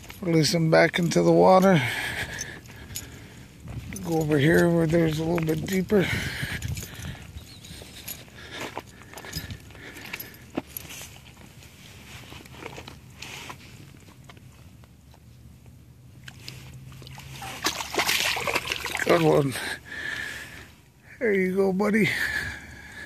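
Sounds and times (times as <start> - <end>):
handling clicks and rustles: 0.0 - 19.7
water sloshing and dripping: 16.2 - 19.8.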